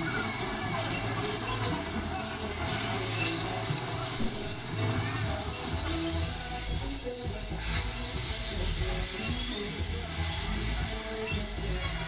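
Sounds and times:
fairground music: 0.0 - 12.0
metallic squeal of spinning ride: 0.0 - 12.0
voices: 0.0 - 12.0.

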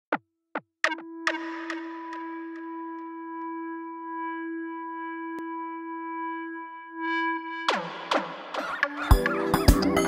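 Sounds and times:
sustained synthesizer note: 0.9 - 8.1.

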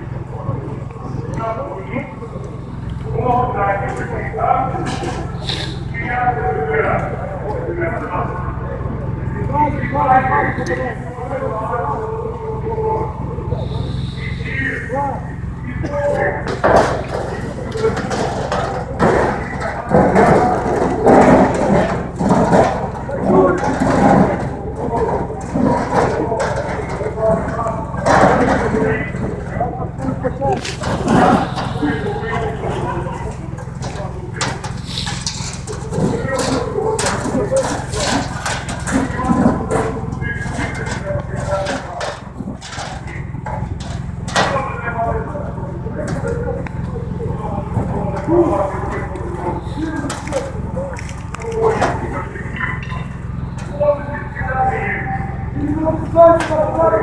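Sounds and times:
low mechanical drone: 0.0 - 57.0
people talking over one another: 0.0 - 57.0
steady low hum: 0.0 - 57.0
knocks and clatters: 2.2 - 5.4, 15.4 - 54.4.

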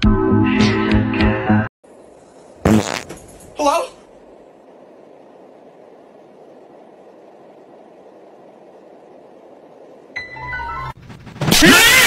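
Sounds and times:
cartoon fart burst: 2.6 - 3.2.

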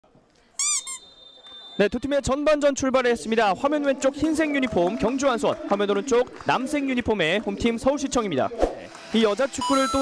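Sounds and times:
referee's whistle blasts: 0.6 - 2.2.

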